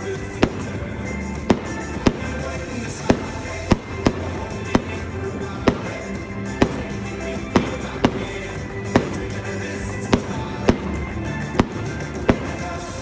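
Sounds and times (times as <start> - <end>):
fireworks bursting: 0.0 - 13.0
music playing: 0.0 - 13.0.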